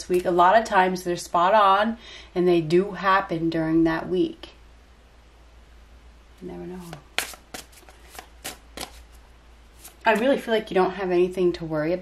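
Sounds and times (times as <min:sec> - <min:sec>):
cards being shuffled: 0:06.8 - 0:10.4.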